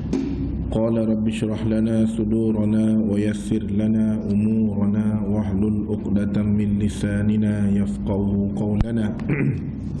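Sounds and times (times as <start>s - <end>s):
man chanting: 0.7s - 9.6s.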